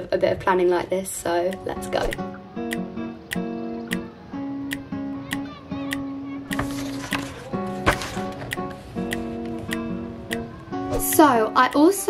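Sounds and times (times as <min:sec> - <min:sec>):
light regular beat: 0:01.5 - 0:10.6
strummed acoustic guitar: 0:01.5 - 0:11.7.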